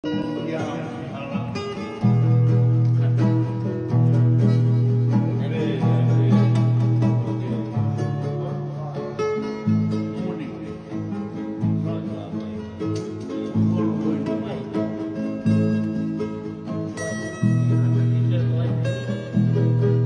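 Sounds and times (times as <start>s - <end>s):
acoustic guitars playing: 0.0s - 20.0s.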